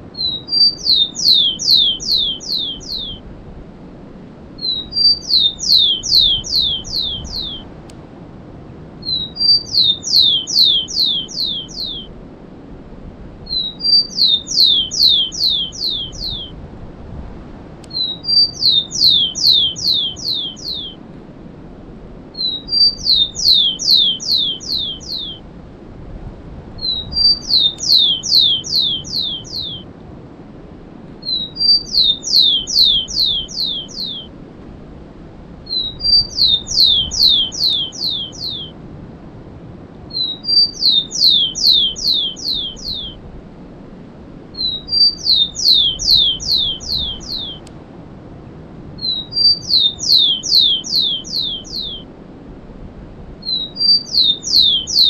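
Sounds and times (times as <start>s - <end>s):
sparrow singing whistles: 0.2s - 3.2s, 4.6s - 7.7s, 9.0s - 12.2s, 13.5s - 16.6s, 17.9s - 21.0s, 22.4s - 25.4s, 26.8s - 29.9s, 31.2s - 34.3s, 35.6s - 38.8s, 40.1s - 43.2s, 44.6s - 47.7s, 49.0s - 52.1s, 53.4s - 55.0s.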